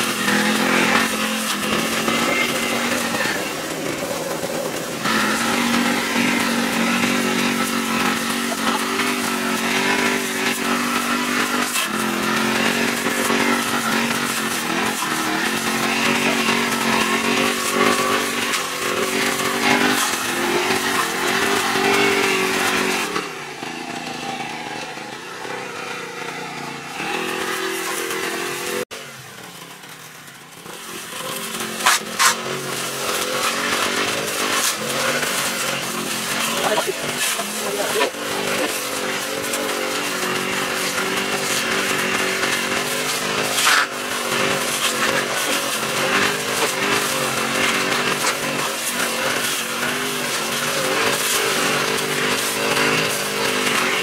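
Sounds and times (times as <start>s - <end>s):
brush cutter engine cutting grass: 0.0s - 54.0s.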